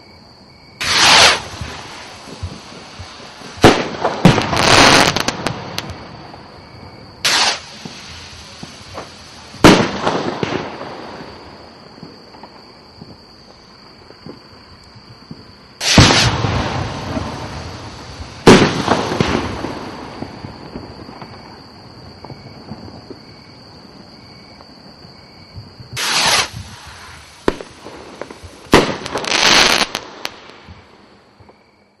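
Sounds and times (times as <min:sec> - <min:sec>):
smaller firework cracks: 0:00.8 - 0:06.6, 0:07.2 - 0:14.6, 0:15.2 - 0:23.3, 0:25.9 - 0:31.6.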